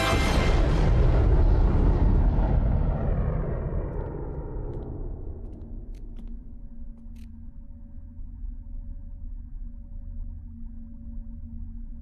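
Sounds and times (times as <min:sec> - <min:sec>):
music: 0:00.0 - 0:02.2, 0:06.0 - 0:12.0
deep rumbling blast: 0:00.0 - 0:05.9.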